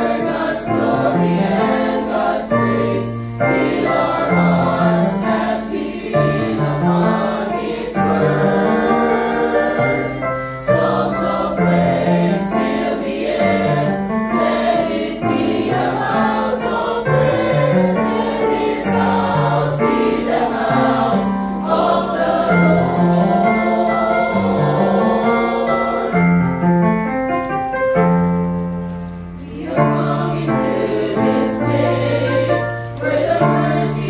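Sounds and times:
choir singing a hymn: 0.0s - 26.9s, 29.3s - 34.0s.

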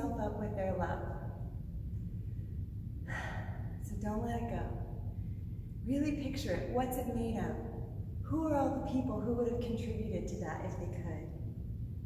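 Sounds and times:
woman speaking: 0.0s - 1.3s, 3.8s - 4.8s, 5.8s - 7.6s, 8.3s - 11.3s
low room rumble: 0.0s - 12.0s
woman breathing in: 2.2s - 3.8s.

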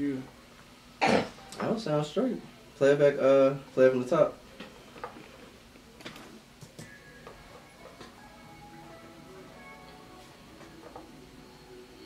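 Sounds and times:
faint hip hop music: 1.0s - 12.0s.

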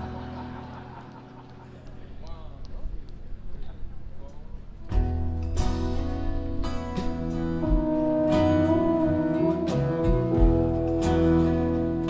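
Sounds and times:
acoustic guitar strumming: 4.9s - 12.0s
pedal steel guitar: 4.9s - 12.0s
steady bass: 4.9s - 12.0s
fiddle long sliding notes: 7.6s - 12.0s.

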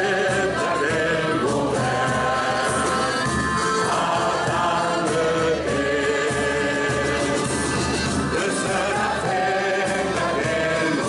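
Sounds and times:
large crowd singing together: 0.0s - 11.0s.

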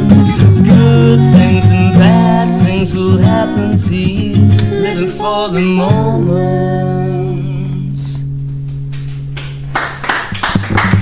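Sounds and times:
person singing: 0.0s - 8.3s.

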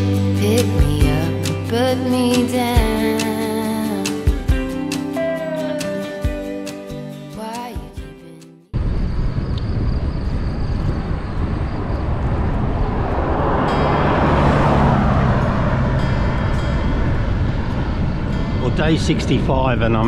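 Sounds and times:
wind and road rumble: 8.7s - 20.0s
motor vehicle passing: 10.2s - 20.0s.

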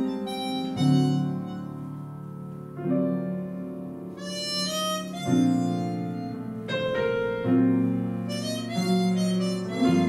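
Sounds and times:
harmonica melody: 0.0s - 2.2s, 4.1s - 7.3s, 8.2s - 10.0s
grand piano accompaniment: 0.0s - 10.0s.

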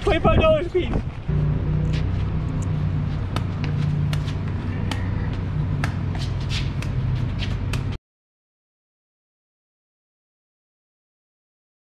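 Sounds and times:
vehicle engine idling: 1.3s - 7.7s.

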